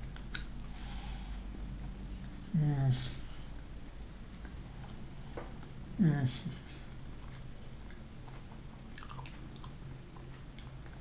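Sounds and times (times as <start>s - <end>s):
low steady hum: 0.0s - 11.0s
person chewing pastry: 6.9s - 11.0s.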